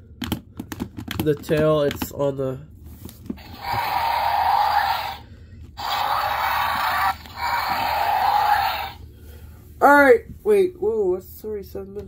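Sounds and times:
electronic dinosaur roar from toy: 3.4s - 9.0s.

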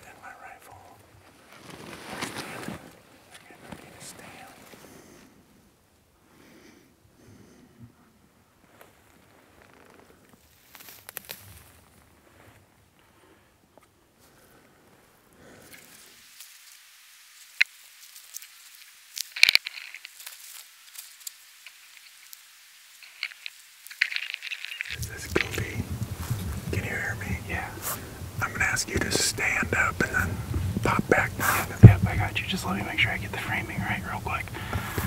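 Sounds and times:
low whispering: 0.0s - 1.1s, 2.2s - 5.5s, 24.8s - 35.0s
clothing and gear rustling: 1.2s - 4.9s, 8.6s - 12.9s, 17.6s - 31.9s, 34.5s - 35.0s
low handling or wind noise: 24.2s - 35.0s.

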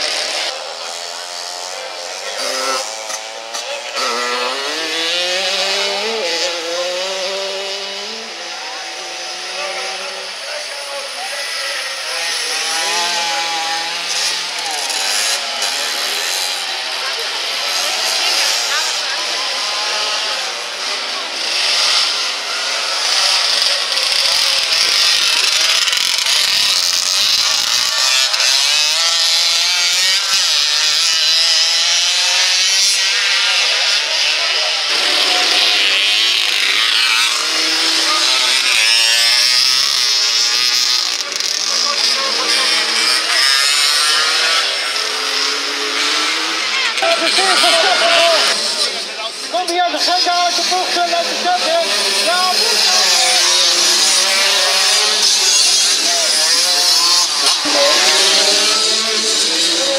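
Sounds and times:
motorcycle engines revving: 0.0s - 59.9s.

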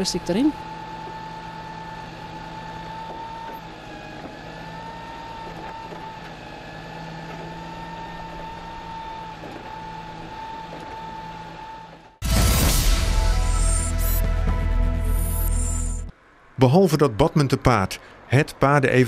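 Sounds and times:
diesel engine running: 0.0s - 16.1s
hydraulic arm lifting bin: 0.5s - 12.2s.

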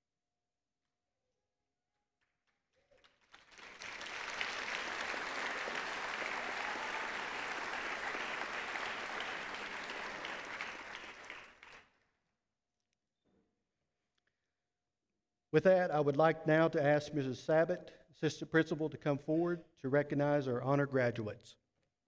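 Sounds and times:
audience applause: 2.9s - 11.9s.

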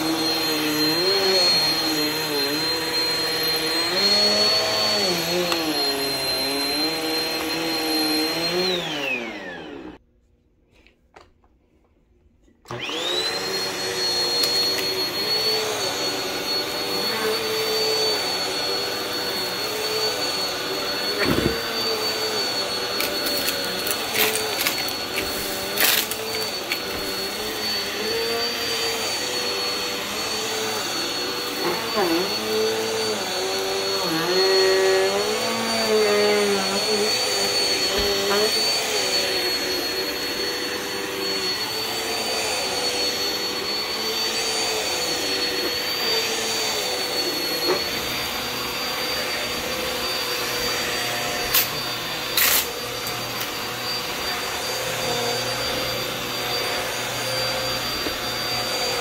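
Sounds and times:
vacuum cleaner motor whine: 0.0s - 10.0s, 12.6s - 59.0s.

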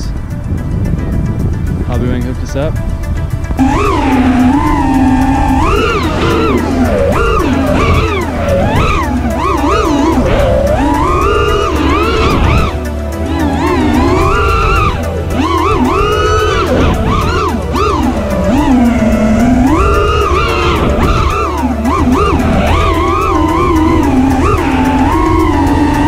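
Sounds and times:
background music: 0.0s - 26.0s
quadcopter motors whining: 3.2s - 26.0s.

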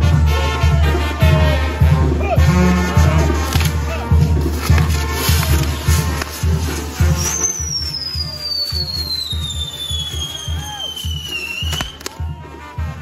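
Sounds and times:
music with steady bass beat: 0.0s - 13.0s
fireworks spraying sparks: 3.4s - 12.4s
sharp firework bangs: 5.0s - 12.4s
falling firework whistle: 6.5s - 12.6s.

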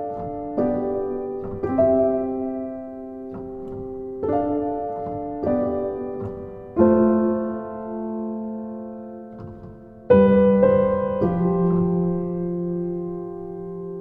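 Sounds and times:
slow solo piano chords: 0.0s - 14.0s.

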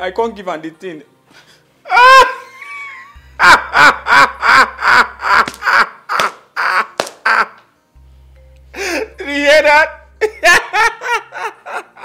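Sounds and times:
man laughing loudly: 1.9s - 7.6s, 10.2s - 12.0s
low music drone: 2.4s - 6.1s, 7.9s - 12.0s.

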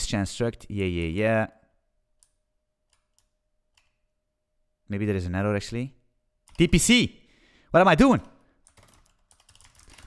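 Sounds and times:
computer keyboard clicks: 2.2s - 4.0s, 8.6s - 10.0s.

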